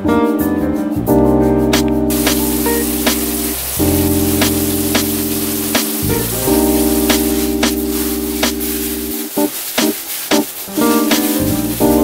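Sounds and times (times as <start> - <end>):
hip-hop music with keyboard chords: 0.0 - 12.0
steady hiss: 2.0 - 12.0.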